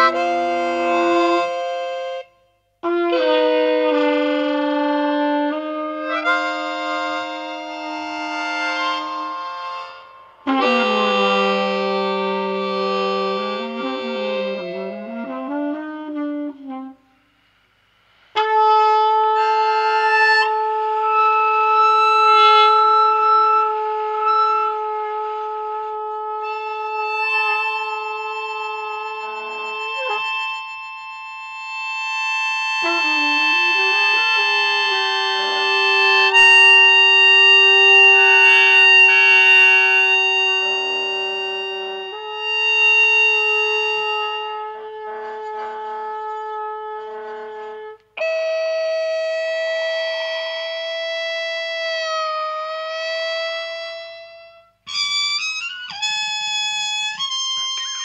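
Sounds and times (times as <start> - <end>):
trumpet playing: 0.0 - 17.3, 18.3 - 58.0.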